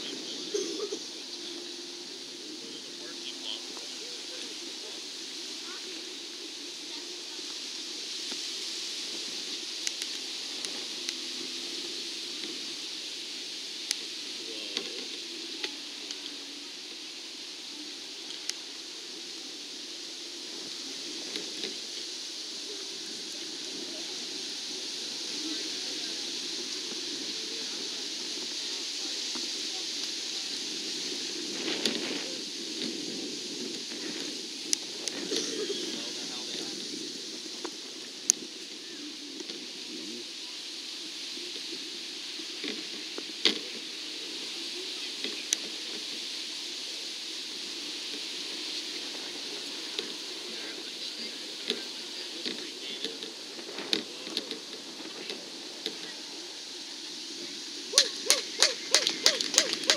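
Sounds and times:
murmur of distant voices: 0:00.0 - 0:59.9
steady hiss: 0:00.0 - 0:59.9.

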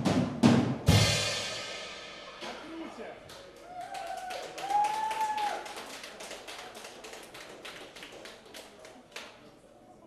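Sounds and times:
audience clapping: 0:03.2 - 0:09.5
crowd cheer: 0:03.5 - 0:06.3.

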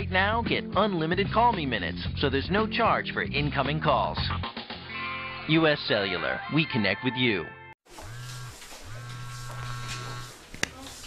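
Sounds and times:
cell phone vibrating: 0:07.9 - 0:10.4.

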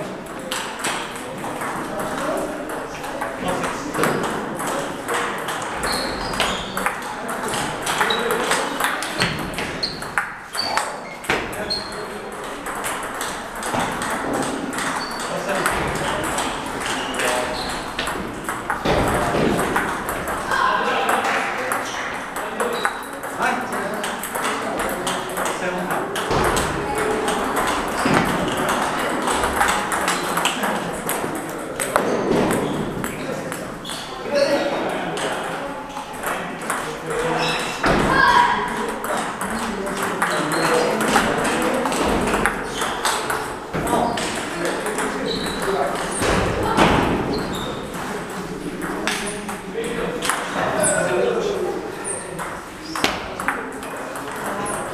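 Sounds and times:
background chatter: 0:00.0 - 0:54.9
table tennis balls clicking: 0:00.2 - 0:34.1, 0:35.1 - 0:37.4, 0:38.7 - 0:47.9, 0:48.7 - 0:50.6, 0:52.1 - 0:54.9.

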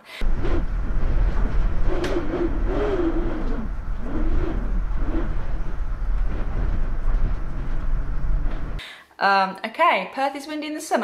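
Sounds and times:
rain hissing: 0:00.2 - 0:08.8
storm wind buffeting microphone: 0:00.2 - 0:08.8.

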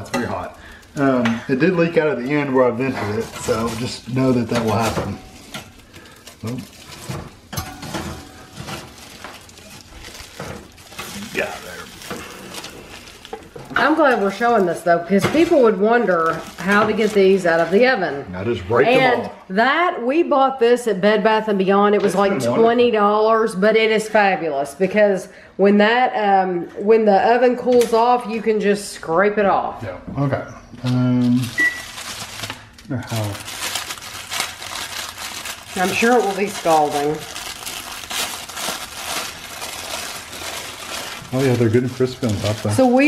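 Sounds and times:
plastic wrapping crinkling: 0:00.0 - 0:18.0, 0:30.8 - 0:43.0
person speaking: 0:11.1 - 0:12.0, 0:18.3 - 0:19.4, 0:22.2 - 0:22.9.

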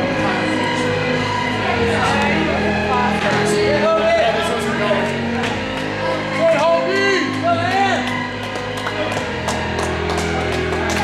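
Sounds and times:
music with singing: 0:00.0 - 0:11.0.

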